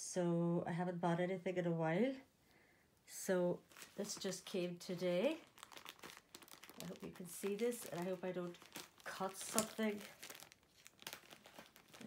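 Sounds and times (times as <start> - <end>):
plastic packaging crinkling: 3.7 - 12.0.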